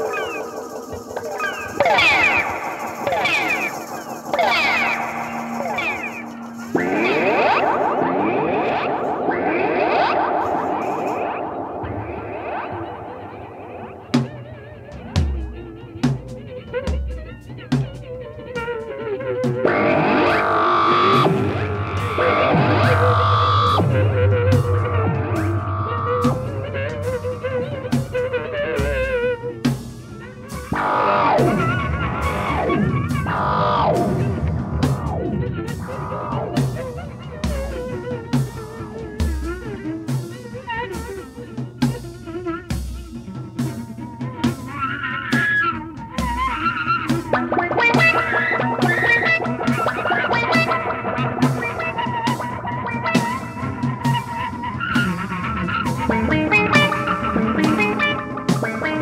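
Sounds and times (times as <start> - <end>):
sharp percussive hits: 0.0 - 14.4
effects-processed electric guitar: 0.0 - 59.0.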